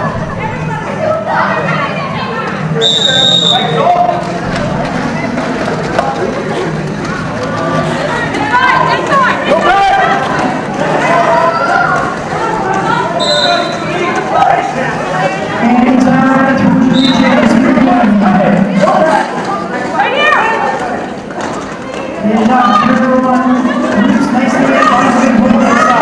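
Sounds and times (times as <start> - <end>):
referee's whistle: 2.8 - 3.8, 13.2 - 13.8, 16.9 - 17.4
roller-skate wheels rumbling: 3.4 - 26.0
crowd shouting: 7.4 - 21.1, 21.9 - 26.0.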